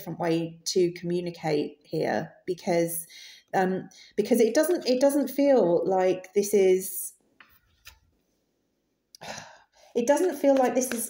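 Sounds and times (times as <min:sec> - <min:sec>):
breathy human sigh: 0:09.2 - 0:09.7.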